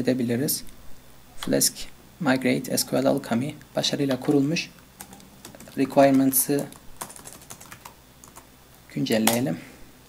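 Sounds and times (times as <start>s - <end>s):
typing on a keyboard: 5.0s - 8.5s.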